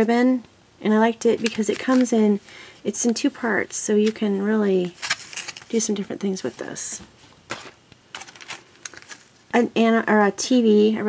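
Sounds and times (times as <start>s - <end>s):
plastic packaging clicks and crinkles: 1.4s - 2.2s, 4.9s - 5.8s, 7.5s - 9.4s.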